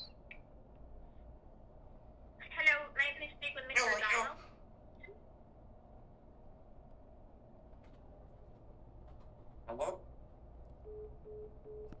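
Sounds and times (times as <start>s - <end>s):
phone call-ended beeps: 10.9s - 12.0s.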